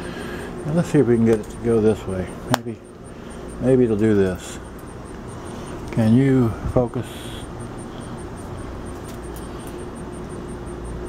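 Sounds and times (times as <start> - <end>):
faint hum: 0.0 - 11.0
high-pitched ticking: 0.6 - 11.0.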